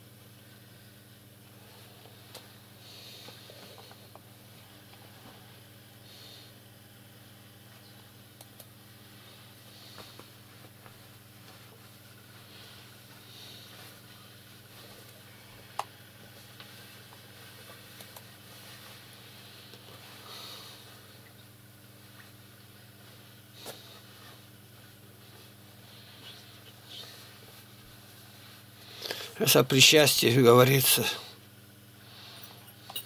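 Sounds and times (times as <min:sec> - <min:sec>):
low electrical hum: 0:00.0 - 0:33.0.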